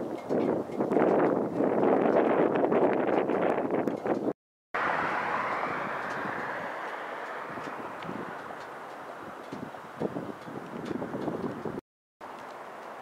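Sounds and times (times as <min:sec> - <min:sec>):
wind buffeting microphone: 0:00.0 - 0:11.8.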